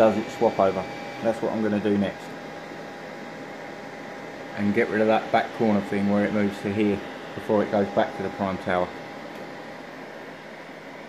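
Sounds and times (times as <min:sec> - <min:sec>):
printer cooling fans whirring: 0:00.0 - 0:11.0.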